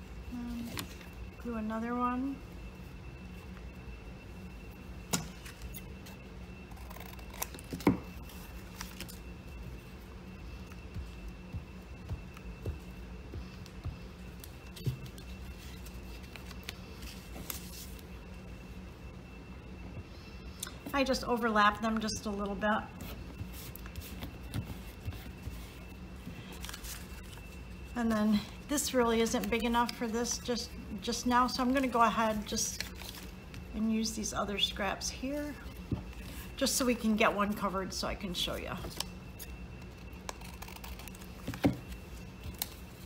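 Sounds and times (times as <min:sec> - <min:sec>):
low hum: 0:00.0 - 0:43.0.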